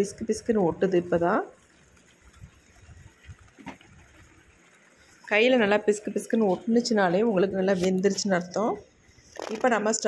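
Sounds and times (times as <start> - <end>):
water boiling in a pan: 0.0 - 10.0.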